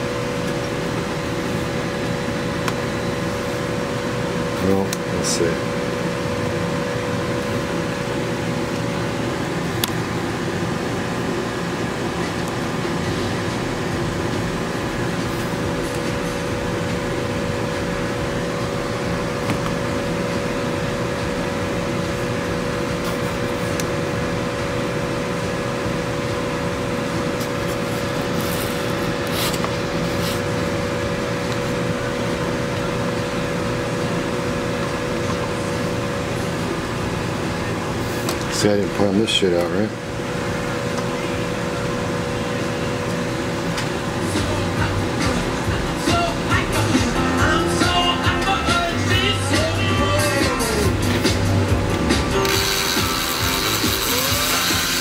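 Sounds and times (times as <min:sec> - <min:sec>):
cordless drill whining: 0:52.4 - 0:55.0.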